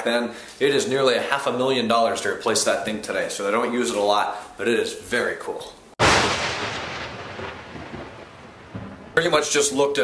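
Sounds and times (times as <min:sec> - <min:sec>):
thunder-like boom: 0:06.0 - 0:09.6.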